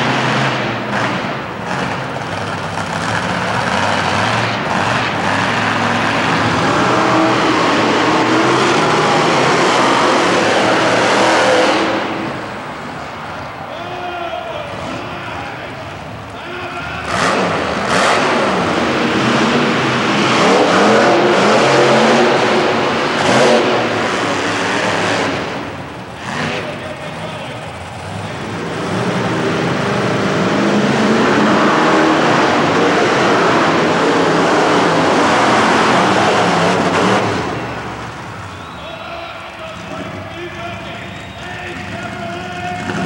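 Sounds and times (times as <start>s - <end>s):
monster truck engines revving: 0.0s - 43.0s.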